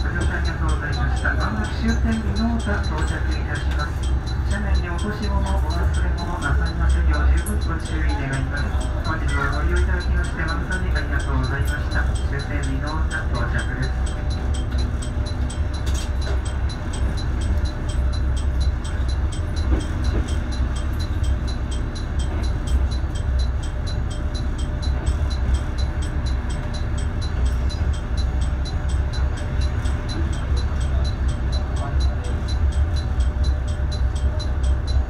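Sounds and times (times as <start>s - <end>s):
diesel railcar engine rumble: 0.0s - 35.0s.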